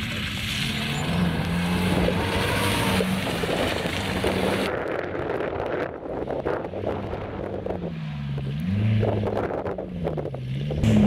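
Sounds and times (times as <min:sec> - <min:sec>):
rally car engine revving: 0:00.0 - 0:11.0
wind on microphone: 0:01.4 - 0:07.9.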